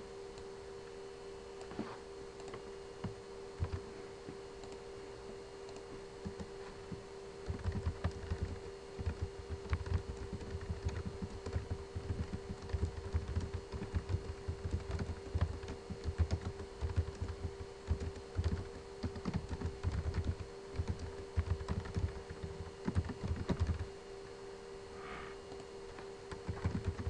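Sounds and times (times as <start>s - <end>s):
steady low hum: 0.0s - 27.0s
keyboard typing clicks: 3.6s - 3.8s, 5.7s - 6.5s, 7.4s - 23.8s, 26.3s - 27.0s.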